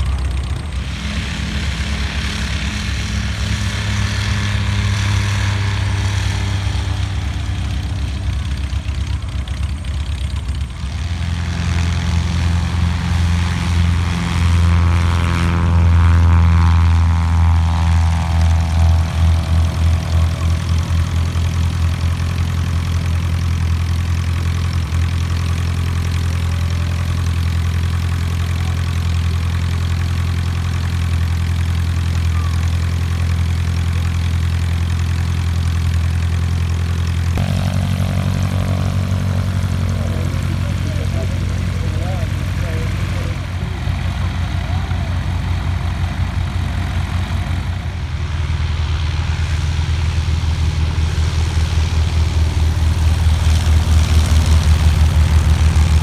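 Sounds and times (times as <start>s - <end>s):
propeller aircraft engine hum: 0.0s - 56.0s.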